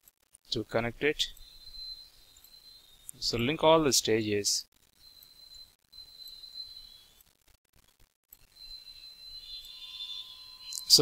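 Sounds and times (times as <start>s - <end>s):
high-pitched electronic whine: 0.6s - 11.0s
low electronic tone: 1.3s - 3.7s, 8.4s - 11.0s
man speaking: 3.2s - 4.7s.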